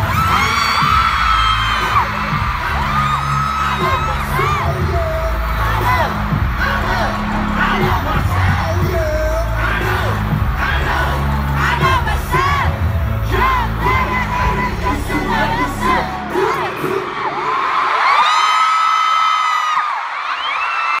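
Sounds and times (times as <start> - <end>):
concert music with heavy bass: 0.0 - 17.6
crowd screaming and cheering: 0.0 - 21.0.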